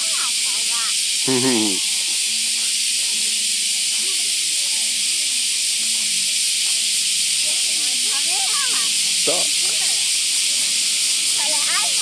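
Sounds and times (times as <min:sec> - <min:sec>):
faint children's voices: 0:00.0 - 0:05.3, 0:07.4 - 0:10.1, 0:11.3 - 0:12.0
cicada chorus: 0:00.0 - 0:12.0.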